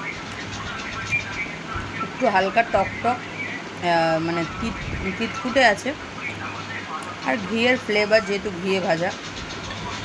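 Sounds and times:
woman speaking: 2.0s - 3.2s, 3.8s - 6.0s, 7.2s - 9.2s.

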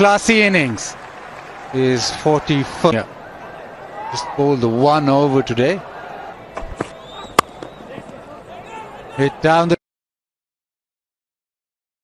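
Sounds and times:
faint stadium crowd noise: 0.0s - 9.8s
cricket bat striking ball: 6.6s - 8.2s.

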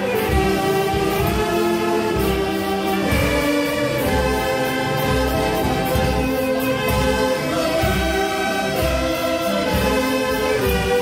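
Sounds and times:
saxophone ensemble playing chords: 0.0s - 11.0s.

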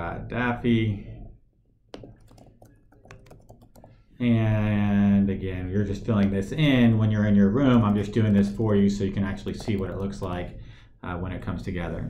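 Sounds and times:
computer keyboard typing: 2.0s - 4.0s, 7.6s - 10.6s.

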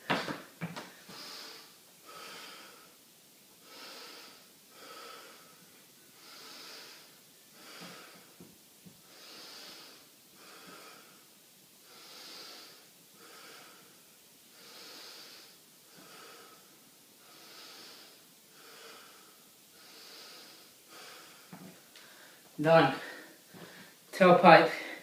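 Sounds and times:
man breathing deeply through nose: 1.0s - 3.0s, 3.6s - 8.4s, 9.0s - 24.0s.

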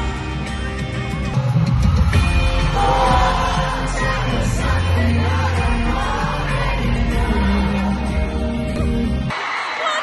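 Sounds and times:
audience singing along: 2.4s - 9.6s
crowd shouting: 2.5s - 7.6s, 9.3s - 10.0s.

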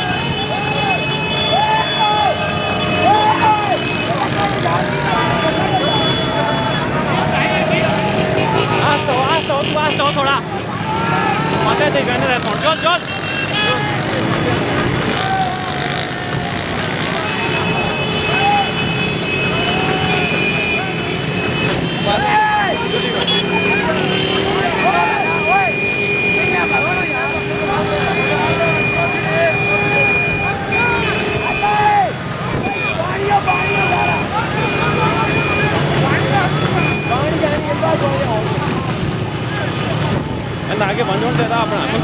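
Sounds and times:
men shouting: 0.0s - 14.2s, 22.0s - 37.3s
motorcycle and vehicle engines: 0.0s - 42.0s
high horn-like tone beeping: 4.9s - 7.0s, 17.3s - 31.9s, 32.5s - 35.8s, 36.4s - 37.3s.

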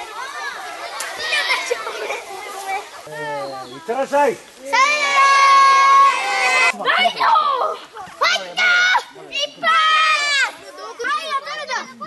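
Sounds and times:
young children talking: 0.0s - 12.0s.

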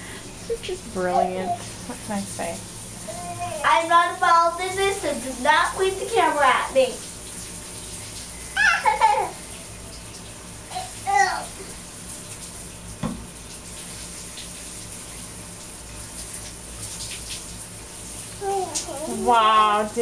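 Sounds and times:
running water: 0.0s - 20.0s
toddler babbling: 1.0s - 1.8s, 3.0s - 3.8s, 8.6s - 9.4s, 10.7s - 11.7s, 18.4s - 19.6s
soft knock: 13.0s - 13.2s.

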